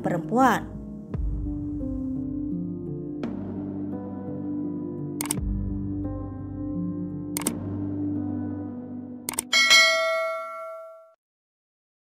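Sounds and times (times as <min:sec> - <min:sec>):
bell-like ding: 0:09.5 - 0:11.2.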